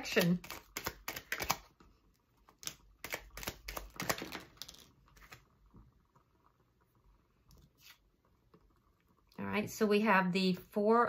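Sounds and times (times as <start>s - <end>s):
cards snapping and clicking: 0.1s - 1.7s, 2.5s - 5.4s
cards slapping on cloth table: 0.4s - 1.7s.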